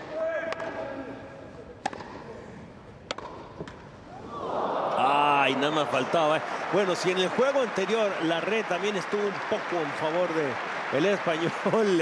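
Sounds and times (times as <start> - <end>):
tennis ball struck by rackets: 1.8 - 2.2, 3.0 - 3.8.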